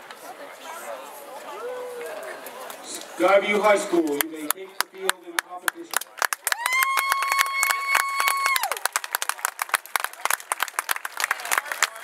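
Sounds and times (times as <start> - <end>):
audience clapping and cheering: 4.1 - 12.0.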